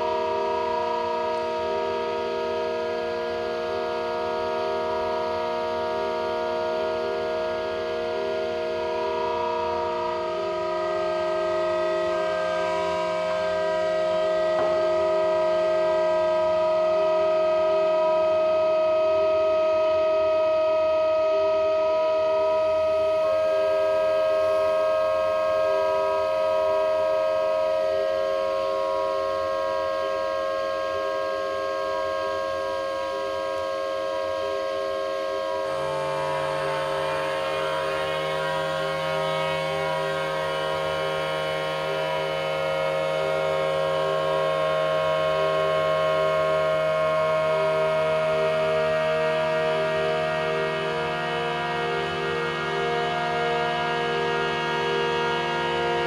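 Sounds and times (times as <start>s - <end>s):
pipe organ chord: 0.0s - 56.0s.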